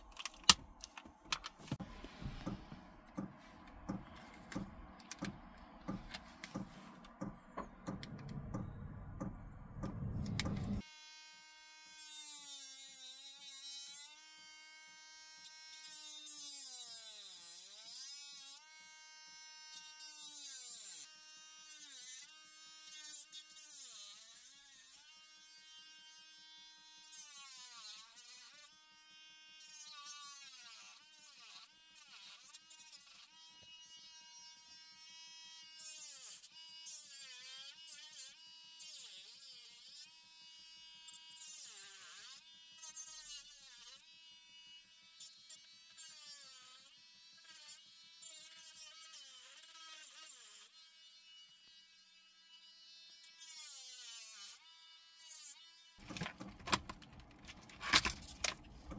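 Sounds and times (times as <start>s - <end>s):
rotary tool whining: 0.0s - 10.8s.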